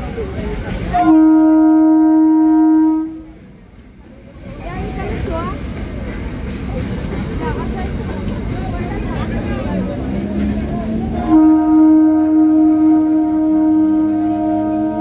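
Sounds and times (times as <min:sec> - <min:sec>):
crowd talking: 0:00.0 - 0:15.0
train rumbling: 0:00.0 - 0:15.0
train horn: 0:00.9 - 0:03.4, 0:11.1 - 0:15.0.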